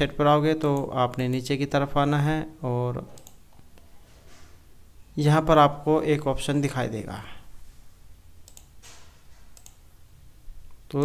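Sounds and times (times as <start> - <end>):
man talking: 0.0 - 3.2, 5.2 - 7.5.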